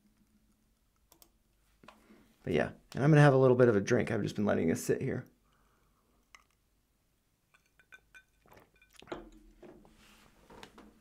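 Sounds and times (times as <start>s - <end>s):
glass clinking: 7.5s - 9.6s.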